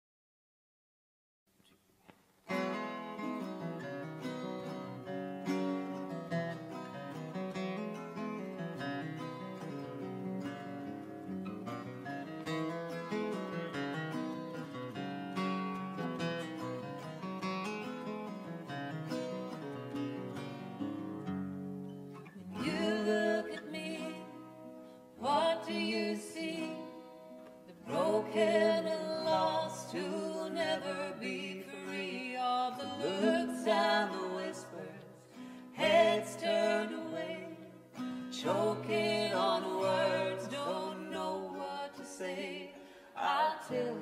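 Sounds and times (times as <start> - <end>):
acoustic guitar playing: 2.4 - 44.0
person singing: 22.4 - 24.4, 25.2 - 27.0, 27.7 - 37.7, 38.3 - 44.0.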